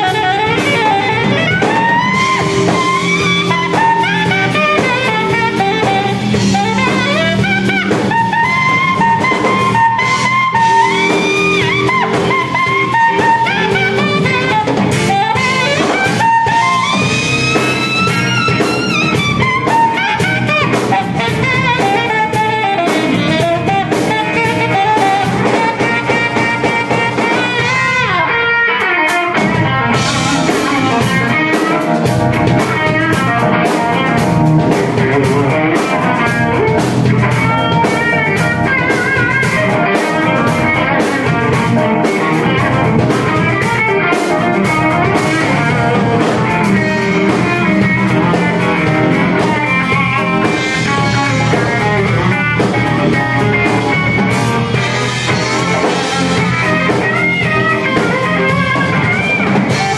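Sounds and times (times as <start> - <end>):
electric guitar: 0.0 - 59.9
funk band playing: 0.0 - 59.9
saxophone playing: 0.0 - 59.9.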